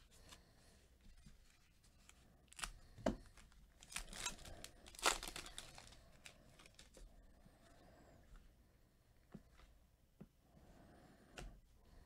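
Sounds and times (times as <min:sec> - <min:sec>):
foil wrapper tearing and crinkling: 0:02.5 - 0:07.0.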